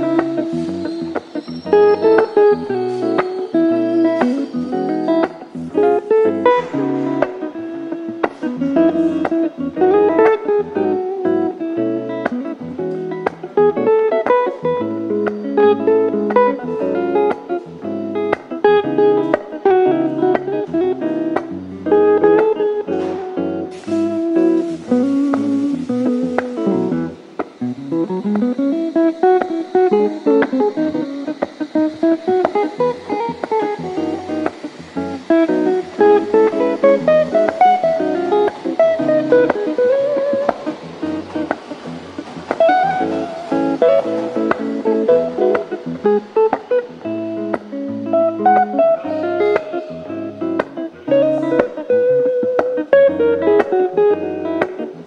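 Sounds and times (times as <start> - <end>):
brief hiss: 0.0 - 9.6, 22.5 - 46.9
solo guitar playing: 0.0 - 55.0.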